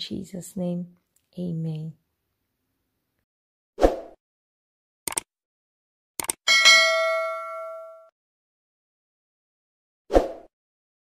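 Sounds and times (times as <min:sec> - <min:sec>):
quick clicks: 0:05.1 - 0:05.3, 0:06.2 - 0:06.4
notification bell ding: 0:06.5 - 0:08.1.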